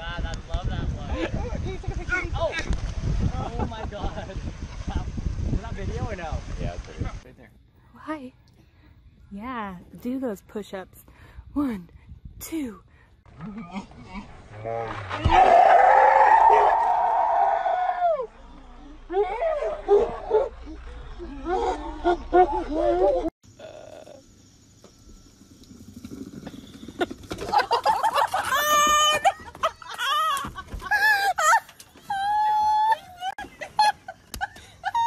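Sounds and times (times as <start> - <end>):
woman screaming: 28.4 - 33.4.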